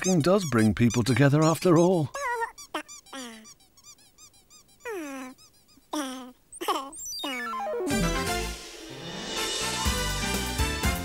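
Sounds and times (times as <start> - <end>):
squeaky cartoon gibberish voice: 0.0 - 7.9.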